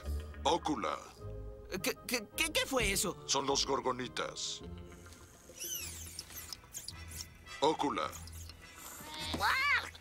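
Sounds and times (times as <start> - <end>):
creature chirps and squeaks: 5.5 - 7.4, 8.1 - 10.0.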